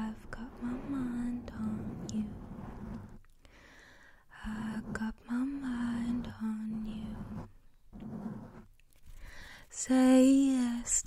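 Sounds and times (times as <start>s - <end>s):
woman singing softly: 0.0s - 2.5s, 4.3s - 7.5s, 9.7s - 11.0s.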